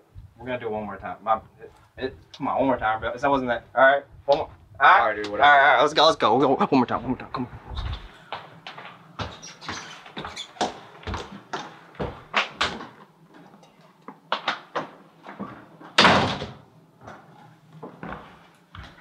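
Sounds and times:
door being opened: 14.7 - 16.6
door slamming: 16.0 - 16.6.

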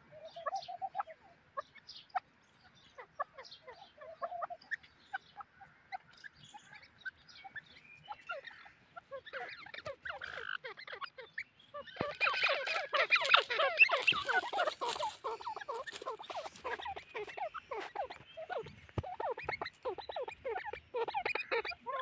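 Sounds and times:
birds chirping: 0.0 - 22.0.

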